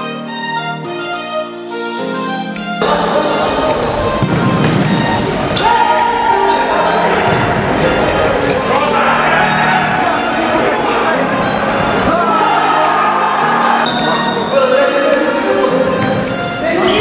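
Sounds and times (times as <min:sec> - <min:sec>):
music track: 0:00.0 - 0:17.0
players shouting: 0:02.8 - 0:17.0
ball kicked and bouncing indoors: 0:03.7 - 0:05.7.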